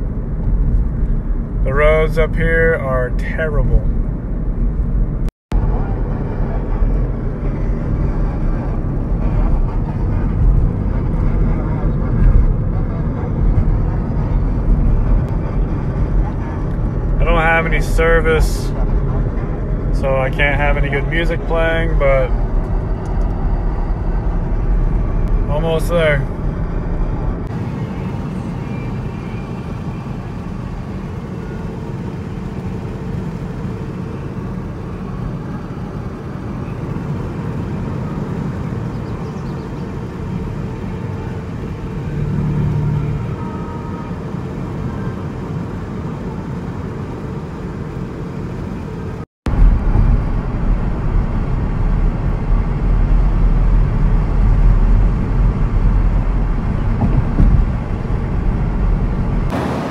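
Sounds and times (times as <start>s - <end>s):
tyres rumbling on pavement: 4.1s - 59.9s.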